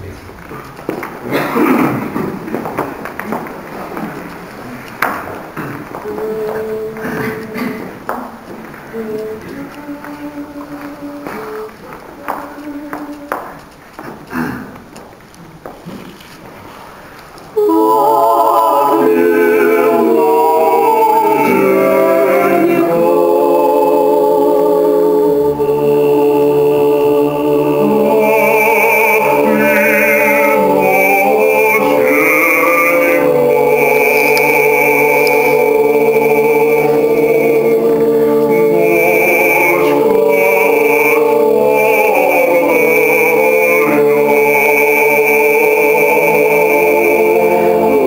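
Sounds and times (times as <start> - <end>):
quiet held notes: 3.1 - 16.1, 17.4 - 48.0
male vocal ensemble singing: 5.6 - 8.0, 17.6 - 48.0.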